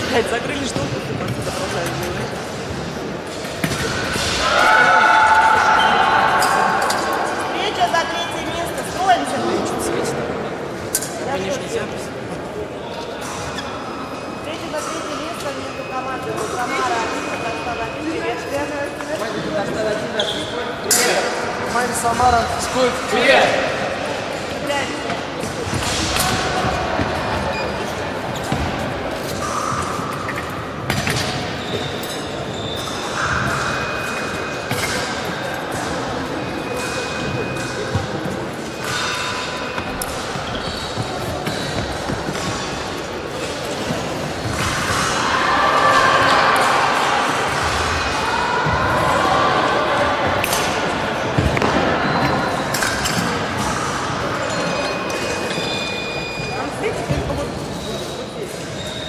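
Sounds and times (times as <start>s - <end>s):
indistinct chatter: 0.0s - 59.0s.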